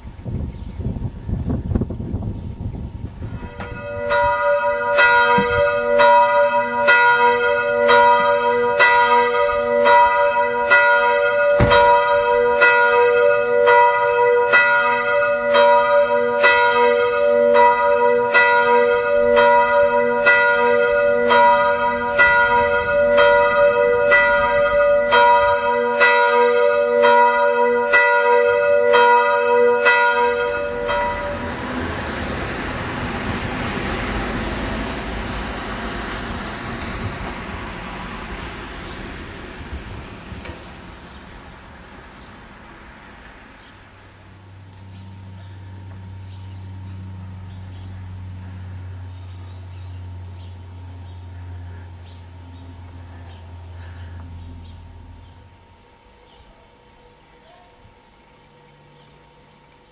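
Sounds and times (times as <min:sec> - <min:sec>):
church bell ringing: 0:03.3 - 0:59.9.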